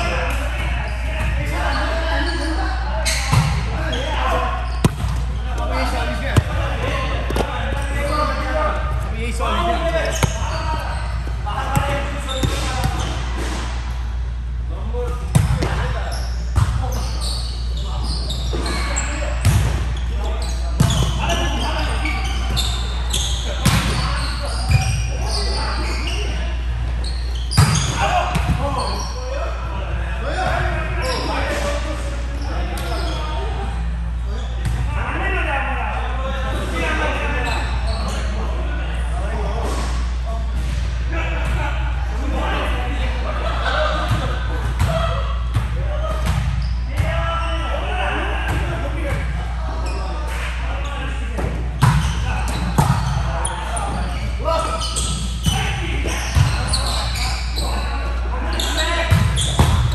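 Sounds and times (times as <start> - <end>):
volleyball hits echoing: 4.8 - 7.9.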